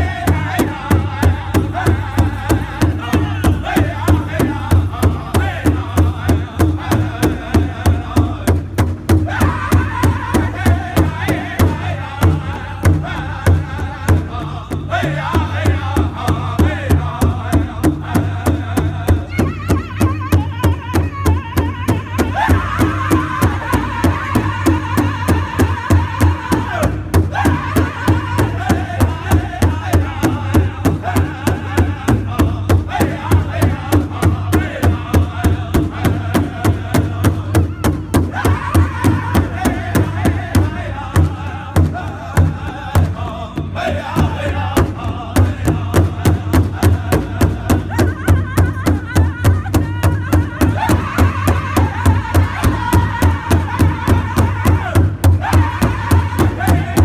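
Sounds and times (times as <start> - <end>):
group singing in high voices: 0.0 - 57.0
large drum beating: 0.0 - 57.0.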